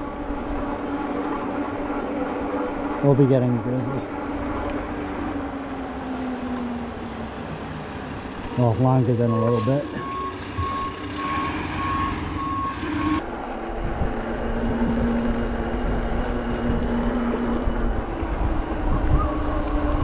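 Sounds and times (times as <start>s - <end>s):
road noise: 0.0s - 20.0s
backup alarm beeping: 9.0s - 13.2s
wind on microphone: 13.2s - 20.0s.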